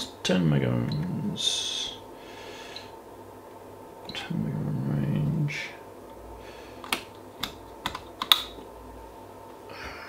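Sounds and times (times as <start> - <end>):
resistance box switches clicking: 6.8 - 8.6.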